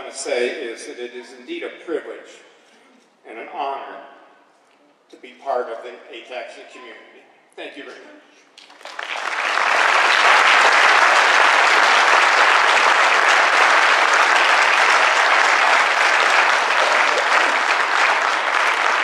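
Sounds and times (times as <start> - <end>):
audience applauding: 8.6 - 19.0.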